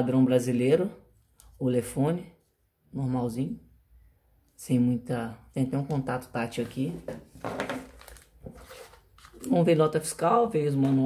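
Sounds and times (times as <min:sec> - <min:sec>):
plastic packaging crinkling: 0:07.5 - 0:09.8.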